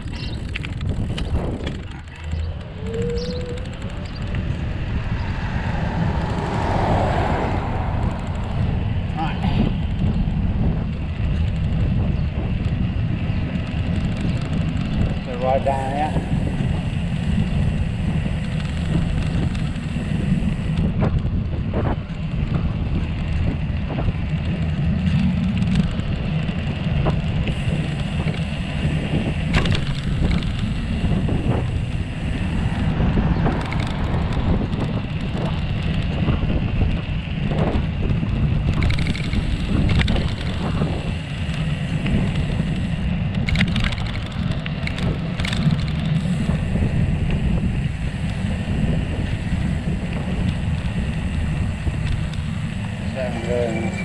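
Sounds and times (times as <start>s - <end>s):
bicycle tyre rolling on tarmac: 0.0s - 54.0s
wind over microphone: 0.0s - 54.0s.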